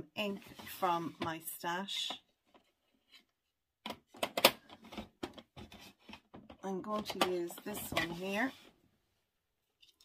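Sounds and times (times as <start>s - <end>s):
clicks and knocks on a desk: 3.8s - 8.2s.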